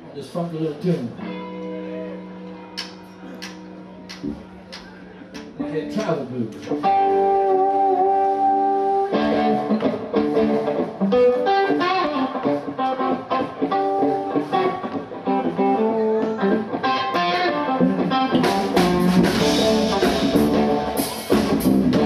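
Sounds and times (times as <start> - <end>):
electric guitar blues licks: 1.1 - 22.0
drums: 2.8 - 22.0.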